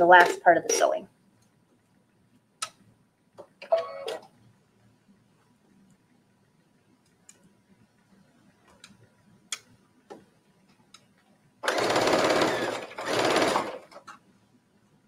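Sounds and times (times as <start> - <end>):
sewing machine stitching: 11.6 - 14.0.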